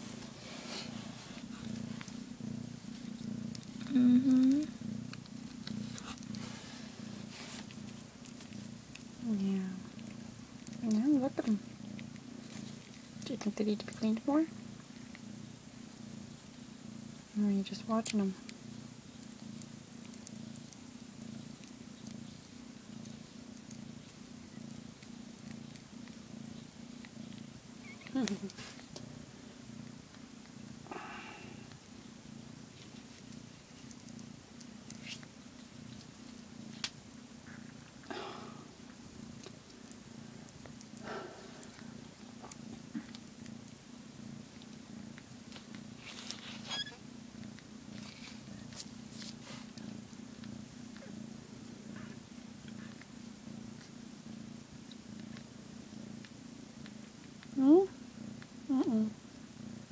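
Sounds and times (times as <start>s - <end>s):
cat purring: 0.0s - 59.9s
kittens squeaking: 27.2s - 28.5s, 46.4s - 47.0s.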